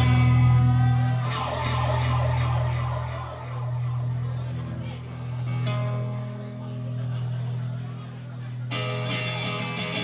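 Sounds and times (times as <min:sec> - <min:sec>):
electric guitars and bass ringing: 0:00.0 - 0:10.0
low amplifier drone: 0:00.0 - 0:10.0.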